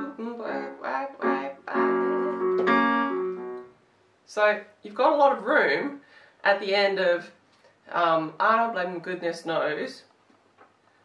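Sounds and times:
piano chords on electronic keyboard: 0:00.0 - 0:03.8
woman speaking: 0:04.3 - 0:10.1.

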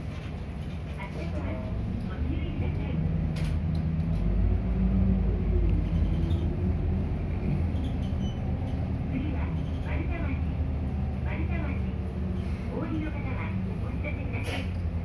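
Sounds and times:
bus diesel engine drone: 0:00.0 - 0:15.0.

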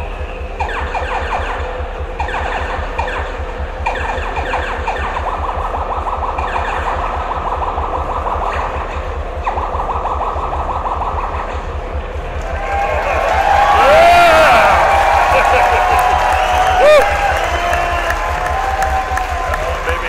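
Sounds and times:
high chirping electronic pulses: 0:00.0 - 0:18.6
low continuous throb: 0:00.0 - 0:20.0.

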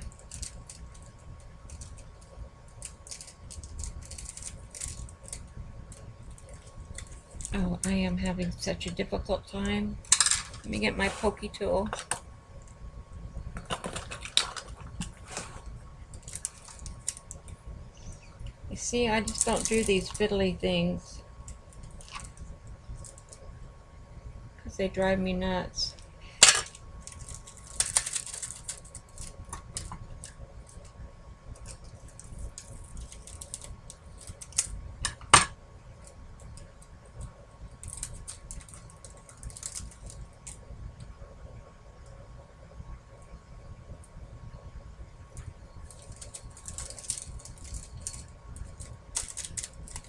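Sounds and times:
faint steady hum: 0:00.0 - 0:50.0.

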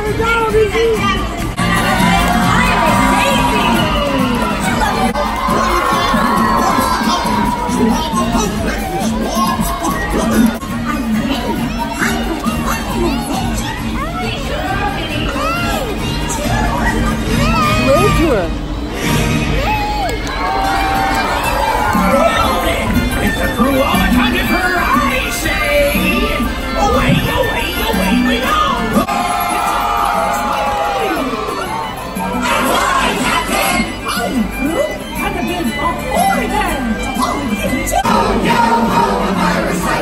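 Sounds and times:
loud music from live show: 0:00.0 - 0:19.8
crowd shouting and cheering: 0:00.0 - 0:40.0
loud stage-show music: 0:00.0 - 0:40.0.

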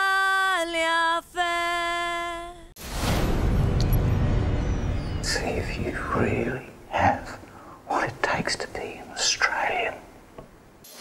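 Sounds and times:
man whispering: 0:05.2 - 0:10.1.

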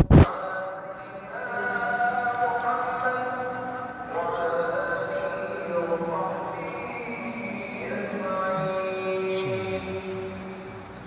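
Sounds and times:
man chanting over loudspeakers: 0:00.2 - 0:10.9.

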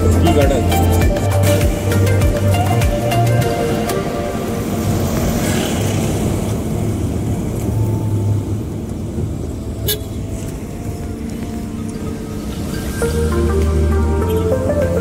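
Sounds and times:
car cabin engine and road rumble: 0:00.0 - 0:15.0.

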